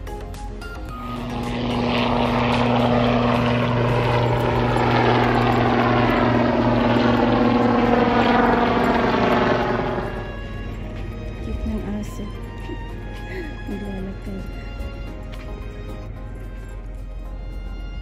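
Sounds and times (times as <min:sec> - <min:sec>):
helicopter flying past: 0:00.2 - 0:18.0.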